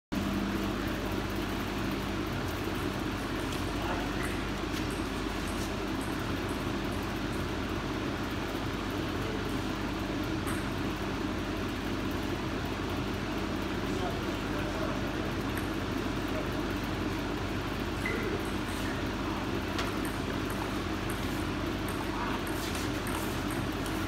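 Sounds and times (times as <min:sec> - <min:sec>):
low hall hum: 0:00.2 - 0:24.0.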